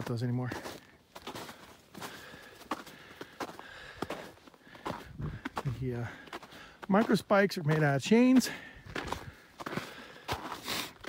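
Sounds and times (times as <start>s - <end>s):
footsteps crunching in snow: 0.0s - 11.0s.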